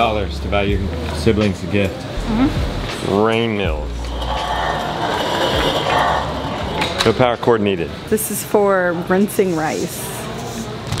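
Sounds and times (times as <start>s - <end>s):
hand-cranked grain mill grinding: 3.9s - 7.1s.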